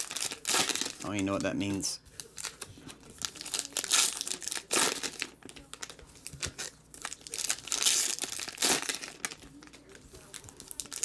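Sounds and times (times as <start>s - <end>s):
foil wrappers crinkling: 0.0s - 11.0s.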